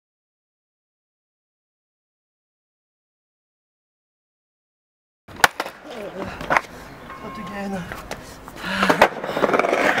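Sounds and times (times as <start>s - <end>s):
skateboard clacking on ground: 5.3s - 10.0s
skateboard wheels rolling on concrete: 5.3s - 10.0s.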